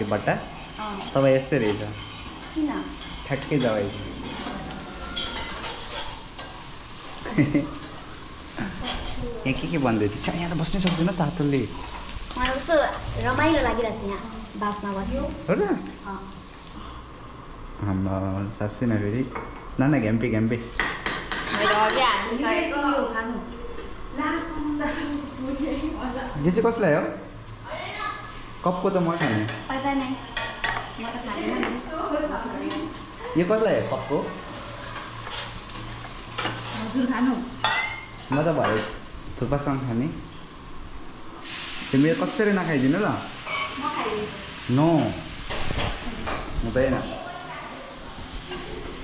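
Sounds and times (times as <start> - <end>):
food sizzling in a wok: 0.0 - 49.0
metal spatula scraping pan: 1.0 - 8.1.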